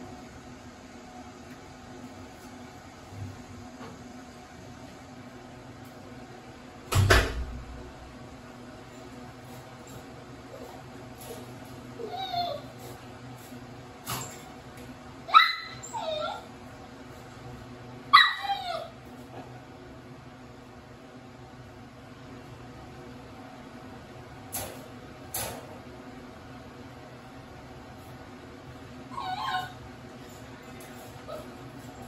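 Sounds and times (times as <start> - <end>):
puppy yipping: 12.0 - 12.7, 15.3 - 16.5, 18.1 - 19.0, 29.1 - 29.8.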